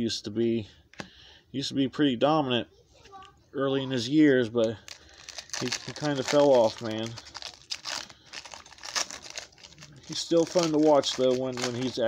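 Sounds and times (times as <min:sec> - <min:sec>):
cards rustling and crinkling: 0:04.6 - 0:12.0.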